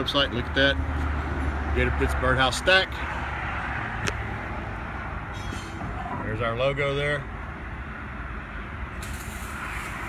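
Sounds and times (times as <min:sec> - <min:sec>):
hiss: 0:09.0 - 0:10.0.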